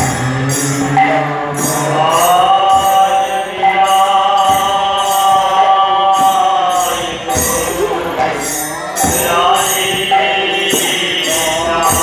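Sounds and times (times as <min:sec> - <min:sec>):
jingling hand percussion: 0:00.0 - 0:12.0
person chanting a long note: 0:00.0 - 0:12.0.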